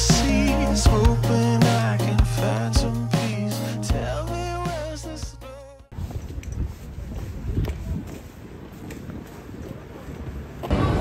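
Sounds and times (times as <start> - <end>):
faint street traffic rumble: 6.3 - 10.8.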